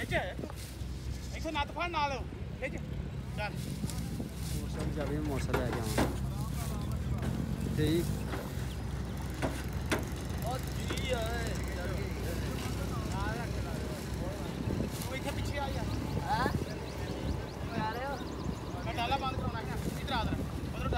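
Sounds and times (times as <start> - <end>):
engine idling: 0.0 - 20.9
sharp knocks: 4.8 - 6.3, 8.2 - 11.1.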